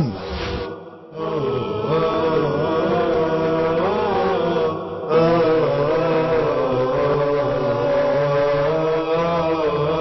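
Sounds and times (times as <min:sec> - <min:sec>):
vocal chanting: 0:00.0 - 0:10.0.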